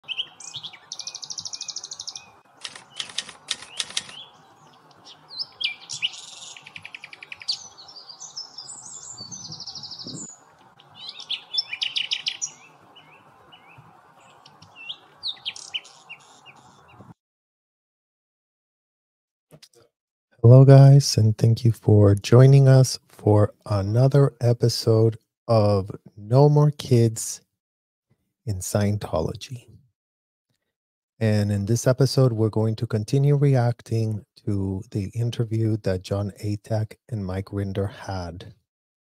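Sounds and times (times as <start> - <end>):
birds chirping and singing: 0.0 - 17.2.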